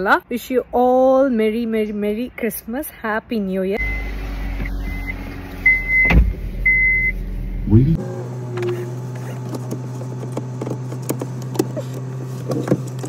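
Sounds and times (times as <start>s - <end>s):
car warning chime beeping: 3.8s - 7.3s
car engine starting and idling: 3.8s - 13.0s
thump: 6.0s - 6.4s.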